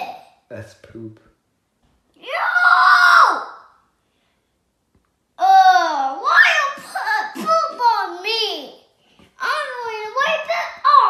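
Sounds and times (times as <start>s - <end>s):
young child wailing: 2.2s - 3.7s, 5.4s - 8.2s.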